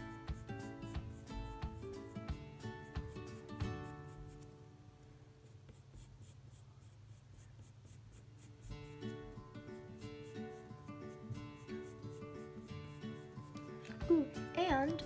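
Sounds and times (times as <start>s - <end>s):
pencil scratching on paper: 0.0s - 4.6s, 5.4s - 14.2s
soft background music: 0.0s - 6.3s, 7.8s - 15.0s.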